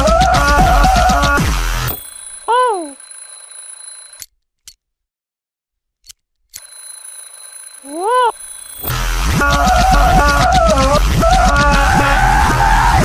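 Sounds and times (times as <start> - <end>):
loud music: 0.0 - 1.9, 8.9 - 13.0
cartoon voice exclamation: 2.5 - 3.0, 7.9 - 8.4.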